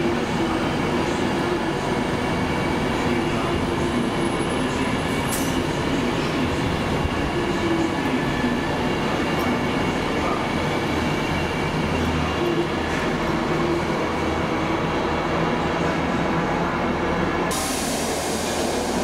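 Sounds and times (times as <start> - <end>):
train wheels rumbling on rail: 0.0 - 19.0.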